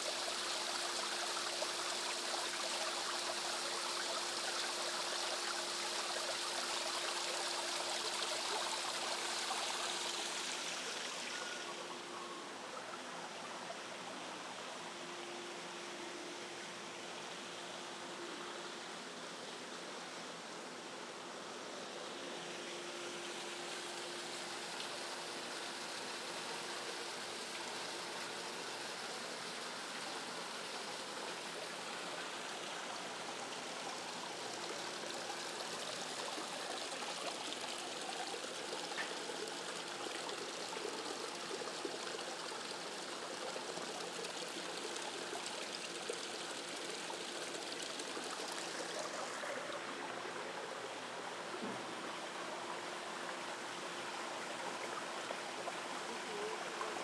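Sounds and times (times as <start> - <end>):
stream trickling over rocks: 0.0 - 57.0.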